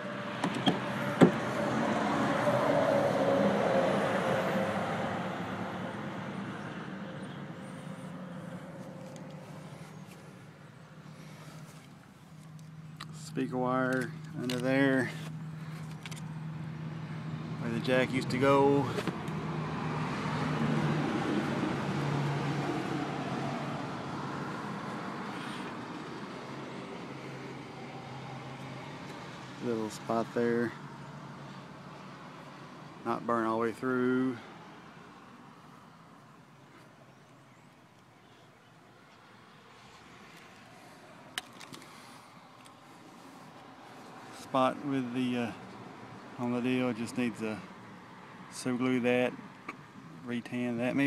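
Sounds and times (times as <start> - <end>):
vehicle engine humming: 0.0 - 51.0.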